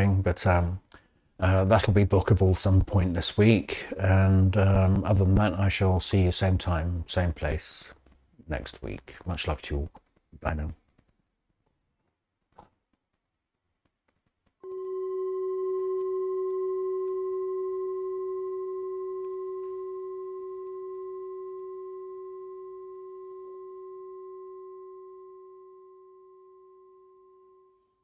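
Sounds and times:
singing bowl ringing: 14.6s - 28.0s.

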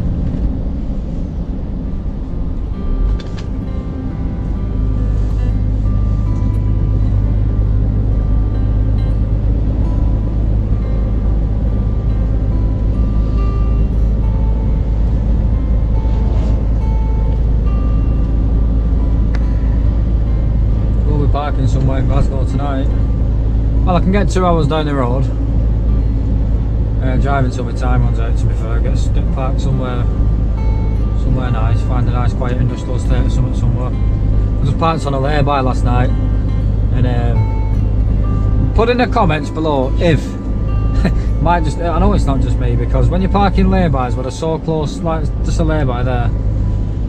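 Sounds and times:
music playing: 0.0s - 47.0s
truck engine drone in cab: 0.0s - 47.0s.

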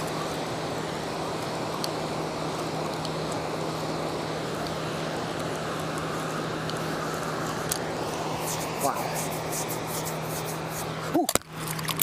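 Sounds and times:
low steady hum: 0.0s - 12.0s
river water rushing: 0.0s - 12.0s.

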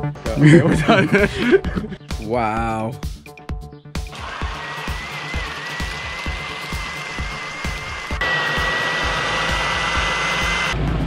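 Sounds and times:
blender motor whirring: 4.1s - 10.8s.

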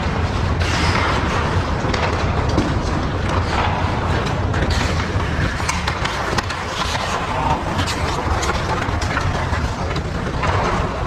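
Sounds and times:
skates scraping on ice: 0.0s - 11.0s
sticks and puck clicking: 0.3s - 11.0s.

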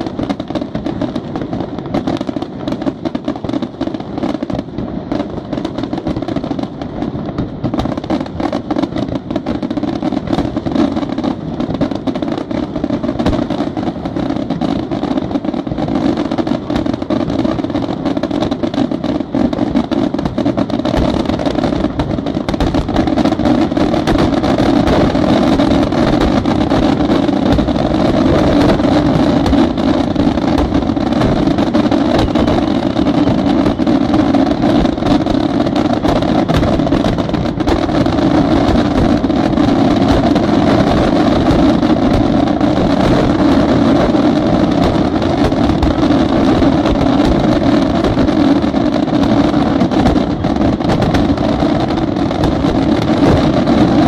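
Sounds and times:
firework shells bursting: 0.0s - 54.0s.

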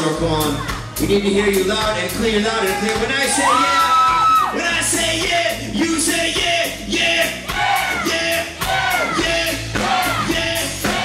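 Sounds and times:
live rock band playing: 0.0s - 11.0s
sung or chanted vocal lines: 0.1s - 11.0s.

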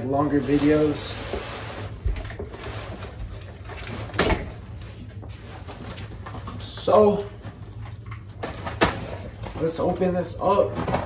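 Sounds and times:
cardboard rustling and scraping: 0.0s - 11.0s.

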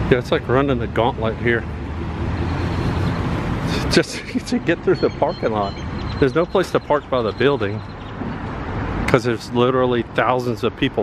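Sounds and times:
car engine rumble: 0.0s - 11.0s.

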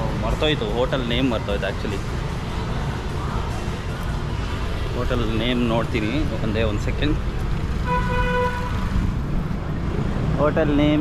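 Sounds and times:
vehicle horn toot: 7.8s - 8.8s.

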